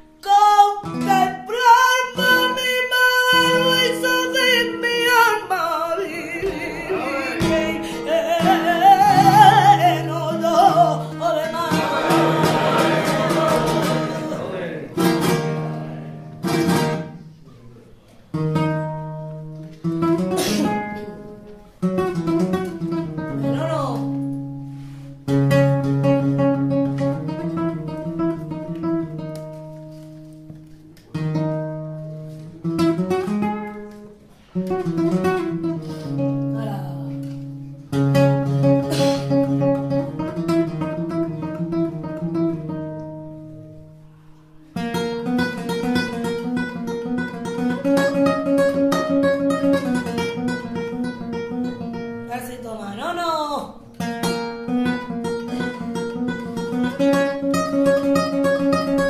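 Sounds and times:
flamenco acoustic guitar: 0:00.0 - 0:59.0.

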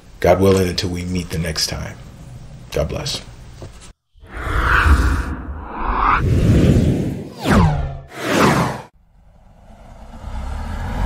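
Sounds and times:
low rumble swell: 0:04.2 - 0:07.2.

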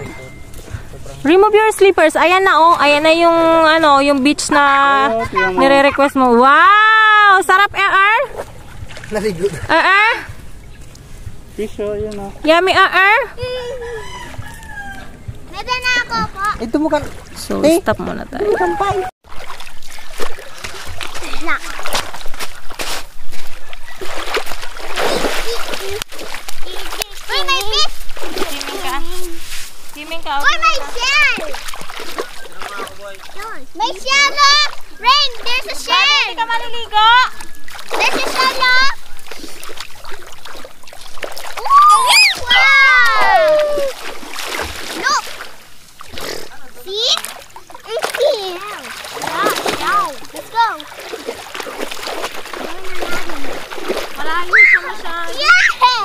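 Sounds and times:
toddler splashing in water: 0:18.8 - 0:29.6, 0:30.3 - 0:36.3, 0:37.3 - 0:56.0
child calling out: 0:41.6 - 0:44.0, 0:54.4 - 0:56.0.

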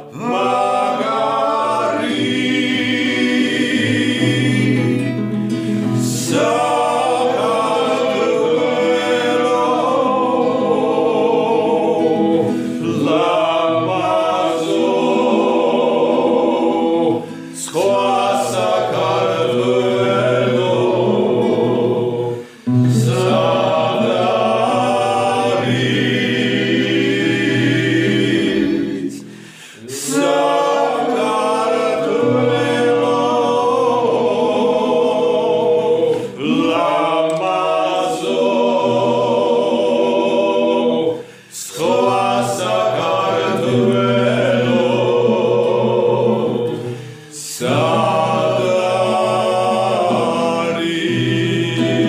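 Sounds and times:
acoustic guitar: 0:00.0 - 0:52.0
men singing in harmony: 0:00.0 - 0:52.0.

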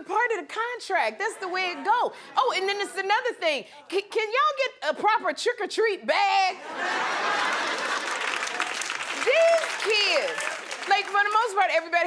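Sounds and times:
audience laughing: 0:06.6 - 0:08.7
audience clapping: 0:07.2 - 0:11.8.

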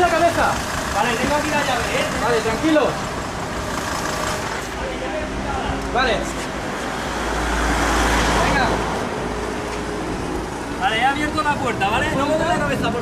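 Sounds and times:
vehicle passing with rumble: 0:06.6 - 0:13.0.

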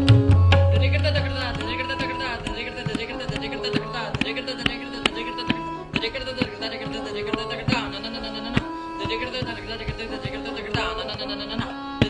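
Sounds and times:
sustained melodic accompaniment: 0:00.0 - 0:12.0
tabla solo: 0:00.0 - 0:12.0.

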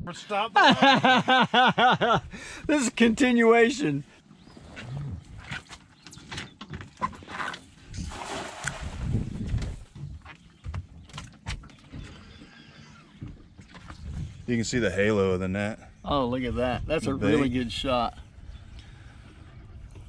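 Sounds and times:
net splashing into water: 0:08.0 - 0:09.3.

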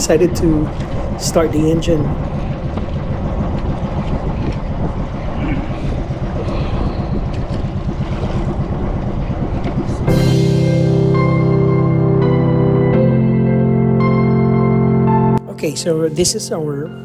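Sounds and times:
boat engine throbbing: 0:00.0 - 0:17.0
background music: 0:10.1 - 0:17.0.

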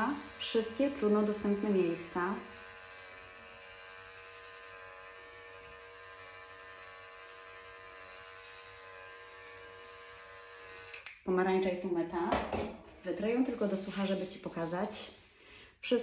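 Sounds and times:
facial brush buzzing: 0:00.0 - 0:11.1.

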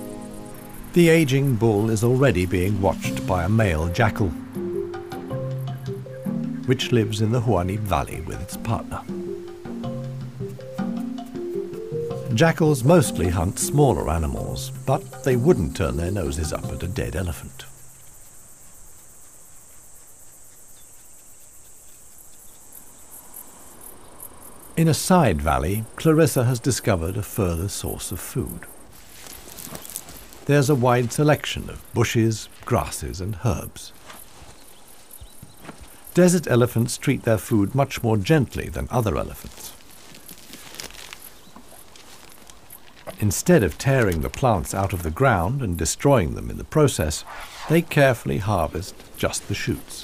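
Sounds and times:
faint outdoor background noise: 0:00.0 - 0:50.0
insects chirring: 0:00.0 - 0:50.0
dry twigs rustling and crackling: 0:05.2 - 0:24.7, 0:27.8 - 0:50.0.

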